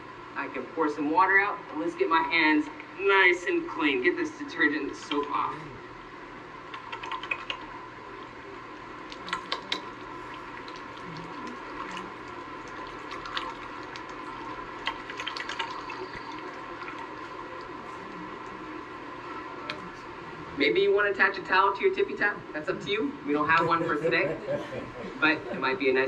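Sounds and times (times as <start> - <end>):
water pouring and trickling: 9.0 - 18.6.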